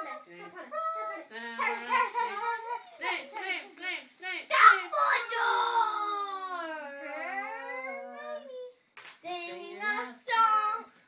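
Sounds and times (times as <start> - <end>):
child making dog-like calls: 5.4 - 8.7.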